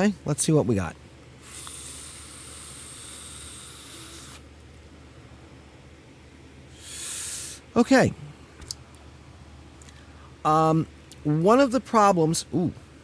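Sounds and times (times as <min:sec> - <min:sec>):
exhaled vapour hiss: 0:01.2 - 0:11.3
hiss of air through atomizer: 0:01.4 - 0:04.5, 0:06.7 - 0:07.8.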